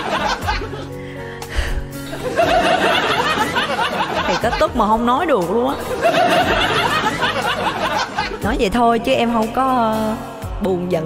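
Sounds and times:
soft music with sustained chords: 0:00.0 - 0:11.0.

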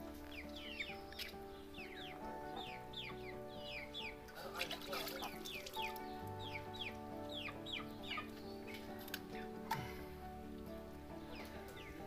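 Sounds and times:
background music with held notes: 0:00.0 - 0:12.0
chickens peeping: 0:00.0 - 0:12.0.

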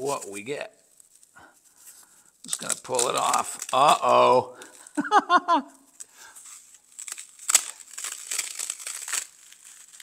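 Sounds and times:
rubber mold tearing foam: 0:06.8 - 0:10.0.

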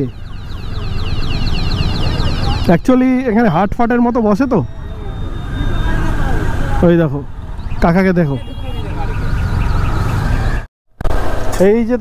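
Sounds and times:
heavy traffic: 0:00.0 - 0:12.0.

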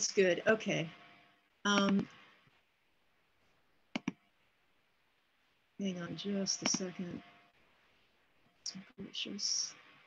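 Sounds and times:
computer mouse button clicks: 0:06.6 - 0:06.9.

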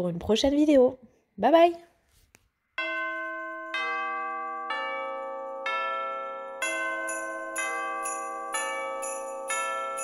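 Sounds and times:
bell-like chimes music: 0:02.8 - 0:10.0.

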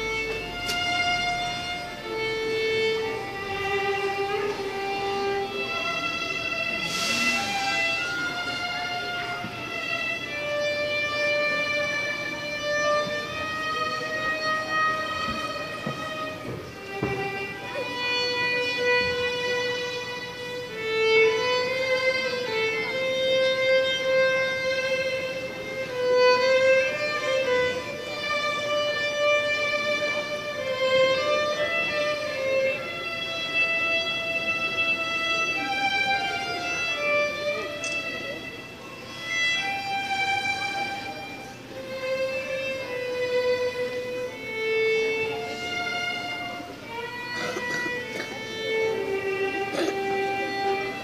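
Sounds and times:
solo violin slow melody: 0:00.0 - 0:51.0.

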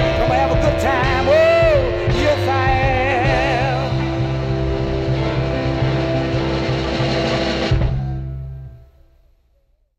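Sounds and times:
r and b band with guitar: 0:00.0 - 0:08.9.

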